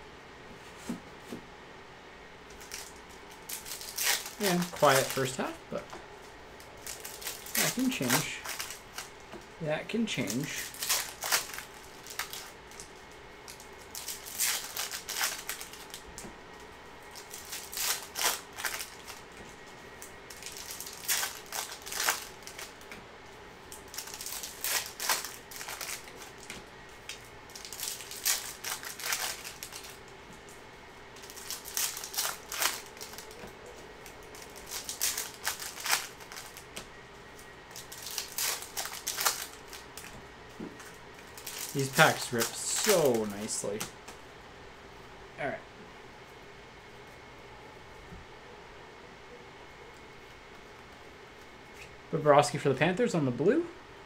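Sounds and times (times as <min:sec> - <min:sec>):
foil wrapper tearing: 0:02.6 - 0:05.9, 0:06.8 - 0:09.1, 0:10.1 - 0:16.0, 0:17.1 - 0:19.3, 0:20.3 - 0:22.9, 0:23.7 - 0:30.1, 0:31.2 - 0:33.4, 0:34.0 - 0:36.7, 0:37.7 - 0:40.1, 0:40.8 - 0:43.9.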